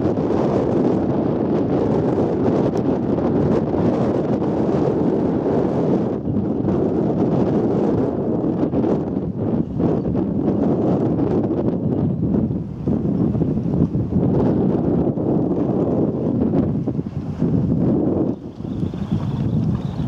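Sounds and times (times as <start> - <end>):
wind on microphone: 0.0 - 20.0.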